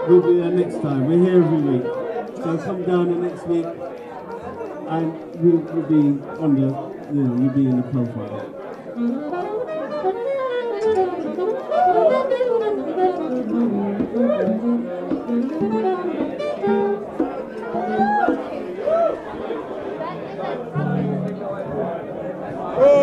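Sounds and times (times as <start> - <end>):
crowd chatter: 0.0 - 23.0
jazz band playing: 9.0 - 18.6
low bass notes: 20.7 - 23.0.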